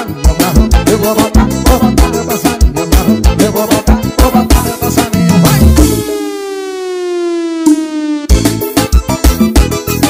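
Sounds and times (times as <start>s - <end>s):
forro music: 0.0s - 10.0s
synthesizer tone gliding downward: 4.5s - 8.8s.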